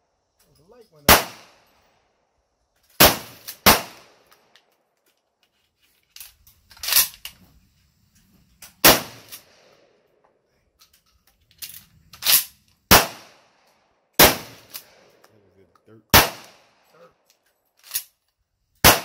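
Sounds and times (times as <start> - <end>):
shotgun shots: 1.1 - 1.7, 3.0 - 4.3, 8.8 - 9.7, 12.3 - 13.5, 14.2 - 15.2, 16.1 - 16.8.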